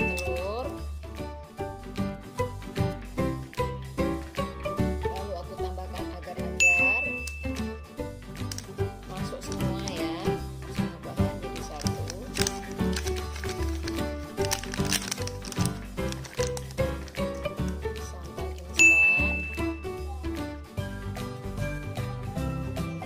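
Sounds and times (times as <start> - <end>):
melodic background music: 0.0 - 23.0
bright ding: 6.6 - 7.8, 18.8 - 19.9.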